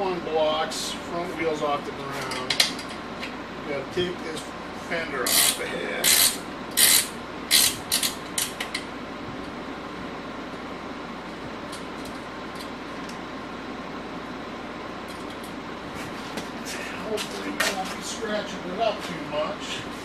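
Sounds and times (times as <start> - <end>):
steady background hum: 0.0 - 20.0.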